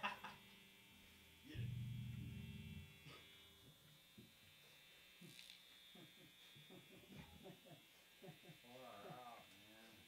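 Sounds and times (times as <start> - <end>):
faint electrical buzz: 0.0 - 10.0.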